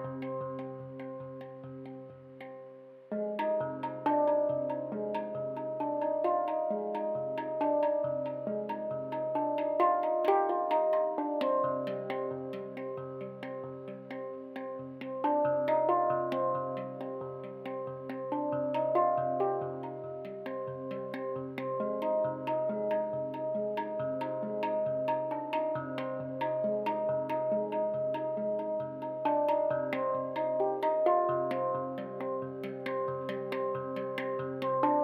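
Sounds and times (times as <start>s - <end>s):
low pulsing handpan note: 0.0s - 2.1s, 3.1s - 35.0s
handpan melody: 0.0s - 35.0s.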